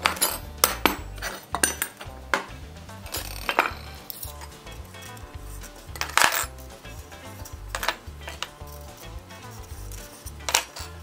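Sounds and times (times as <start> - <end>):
background music with bass line: 0.0 - 11.0
metal bands clinking: 0.0 - 11.0.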